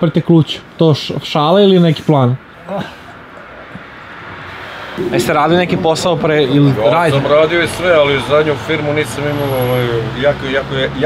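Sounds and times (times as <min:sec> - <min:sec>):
background traffic noise: 0:00.0 - 0:11.0.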